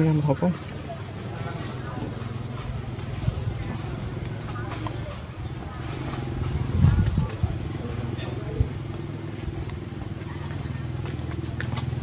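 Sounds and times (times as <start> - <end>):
engine idling: 0.5 - 12.0.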